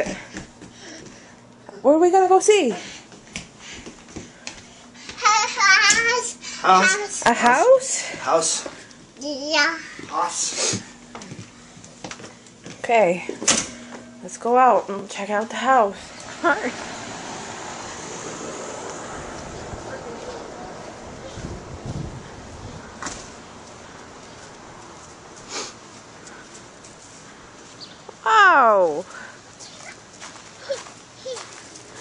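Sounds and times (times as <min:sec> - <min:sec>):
footsteps on tiled floor: 0:00.0 - 0:01.4, 0:03.0 - 0:05.2, 0:10.0 - 0:12.9, 0:23.0 - 0:28.1, 0:29.6 - 0:32.0
wind blowing on microphone: 0:17.8 - 0:23.0.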